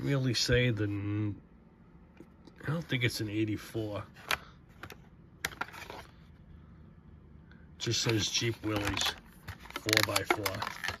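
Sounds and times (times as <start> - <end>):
plastic blister pack handling: 8.0 - 11.0.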